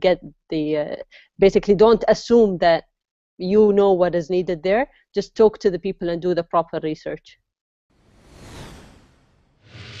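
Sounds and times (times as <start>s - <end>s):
whoosh sound effects: 8.0s - 10.0s.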